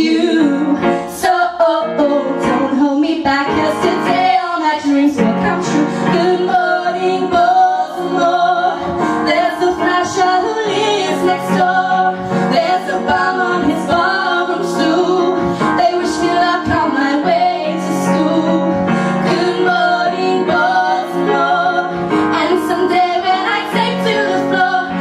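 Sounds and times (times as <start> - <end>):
women singing: 0.0 - 25.0
sustained instrumental accompaniment: 5.2 - 25.0.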